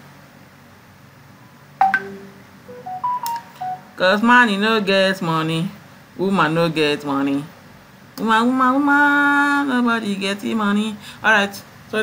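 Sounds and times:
short electronic beeps: 1.8s - 4.0s.

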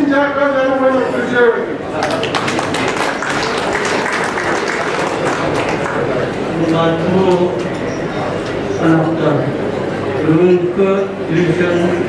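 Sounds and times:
people applauding: 1.9s - 7.9s.

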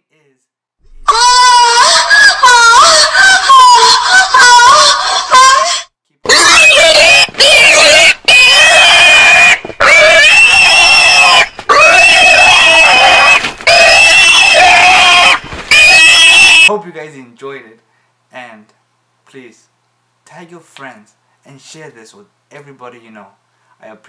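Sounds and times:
pig squealing: 1.0s - 16.7s.

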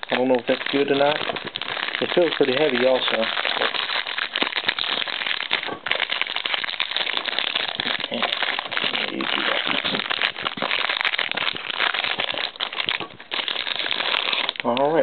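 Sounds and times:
plastic wrapping crinkling: 0.0s - 15.0s.

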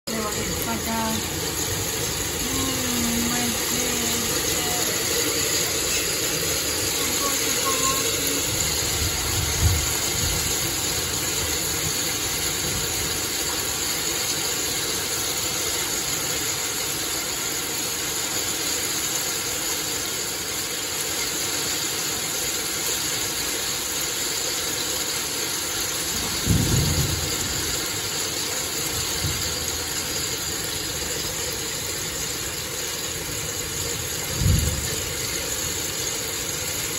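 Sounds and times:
rain and hail hissing: 0.1s - 36.9s.

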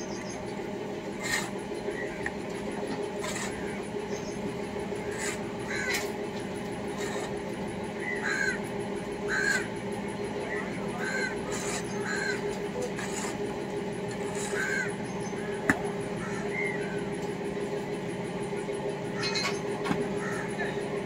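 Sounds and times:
low machine hum: 0.0s - 21.0s
crows cawing: 5.0s - 6.1s, 8.0s - 9.8s, 10.5s - 12.7s, 14.2s - 17.0s, 19.2s - 20.8s.

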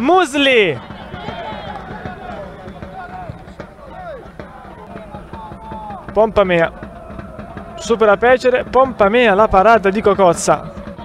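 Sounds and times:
distant voices shouting: 0.0s - 11.0s
steady outdoor noise: 0.0s - 11.0s.

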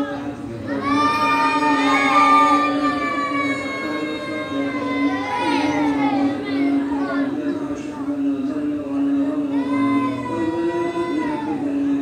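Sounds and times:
voices chanting over loudspeakers: 0.0s - 12.0s.

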